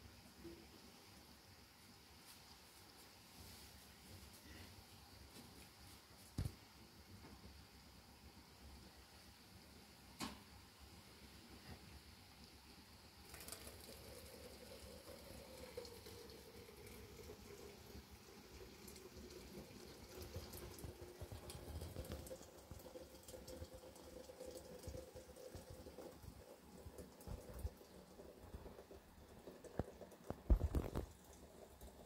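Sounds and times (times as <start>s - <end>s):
kettle hissing: 0.0s - 32.0s
soft knocks of kettle: 26.9s - 31.3s.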